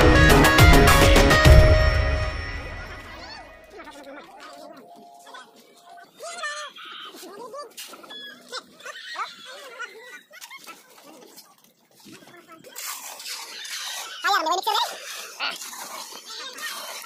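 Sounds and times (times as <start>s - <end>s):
people talking and calling out: 0.0s - 17.0s
shovels scraping wet concrete: 6.9s - 17.0s.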